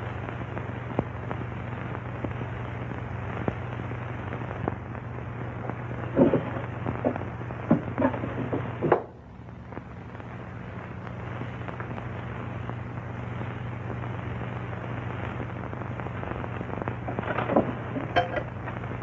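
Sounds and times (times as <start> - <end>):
film soundtrack hiss and hum: 0.0 - 19.0.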